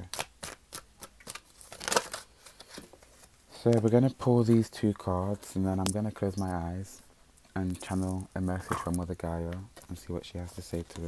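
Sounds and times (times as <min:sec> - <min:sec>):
cards being shuffled: 0:00.0 - 0:07.0, 0:07.6 - 0:11.0.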